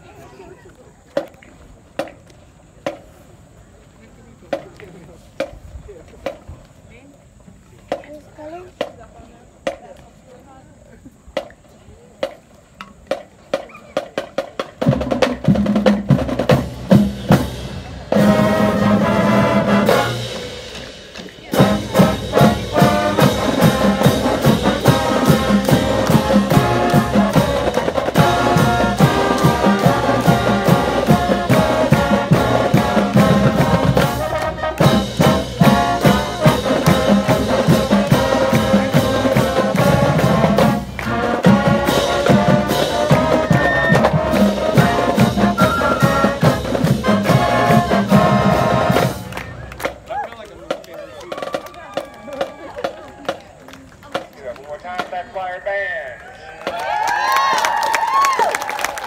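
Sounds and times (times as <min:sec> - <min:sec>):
marching band playing: 0:13.1 - 0:55.8.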